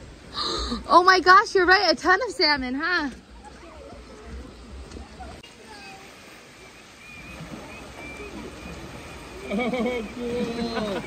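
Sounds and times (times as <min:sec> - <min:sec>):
rocky creek flowing: 0:00.0 - 0:11.0
faint voices: 0:01.2 - 0:11.0.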